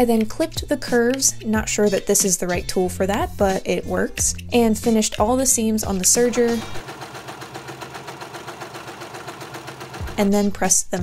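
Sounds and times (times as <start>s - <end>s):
overlock sewing machine running: 6.1s - 10.4s.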